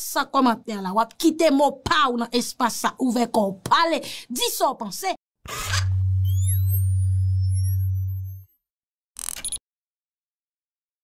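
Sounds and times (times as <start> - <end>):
loud synthesised low hum: 5.8 - 8.3.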